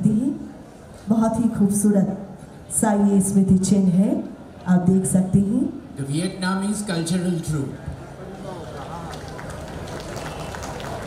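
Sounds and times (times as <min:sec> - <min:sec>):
crowd hubbub: 0:07.4 - 0:11.0
scattered hand-clapping: 0:08.7 - 0:11.0.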